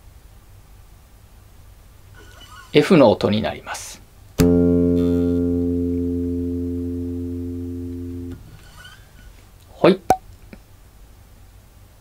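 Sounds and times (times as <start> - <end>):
bass guitar note ringing: 4.4 - 9.0.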